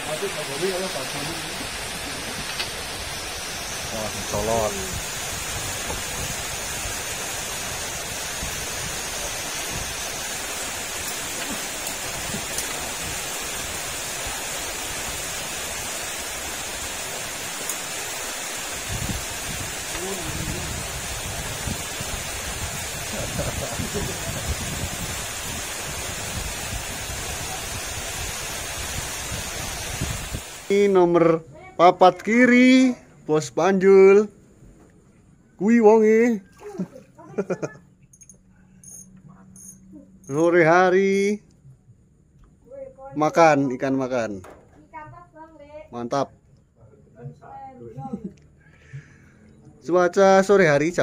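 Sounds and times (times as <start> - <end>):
rain falling on water: 0.0 - 30.9.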